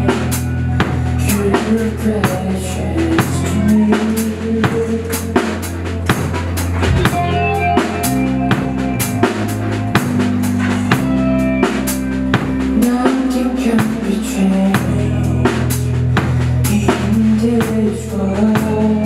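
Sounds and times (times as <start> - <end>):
drum kit steady beat: 0.0 - 19.0
electric bass notes: 0.0 - 19.0
electric guitar chords: 0.0 - 19.0
live rock band playing: 0.0 - 19.0.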